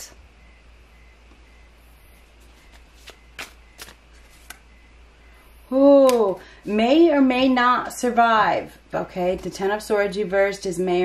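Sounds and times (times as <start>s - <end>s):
papery card snaps: 2.7s - 4.6s, 6.0s - 6.3s.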